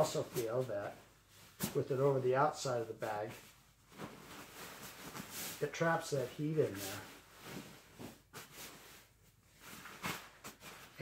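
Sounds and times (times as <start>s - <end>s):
fabric rustling: 0.0s - 11.0s.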